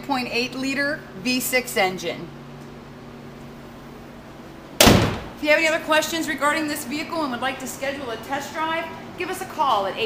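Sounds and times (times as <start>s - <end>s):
car hood slamming shut: 4.8s - 5.4s.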